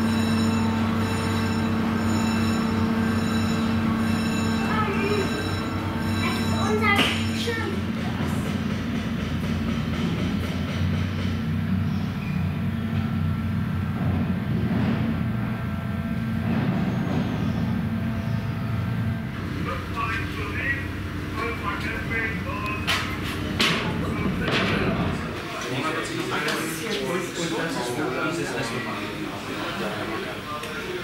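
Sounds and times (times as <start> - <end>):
low mechanical drone: 0.0 - 26.2
people talking indistinctly: 4.3 - 9.0, 19.4 - 31.0.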